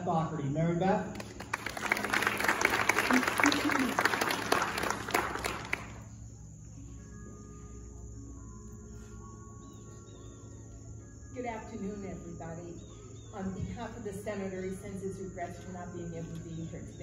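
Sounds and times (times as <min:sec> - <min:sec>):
crowd applauding: 0:01.1 - 0:06.1.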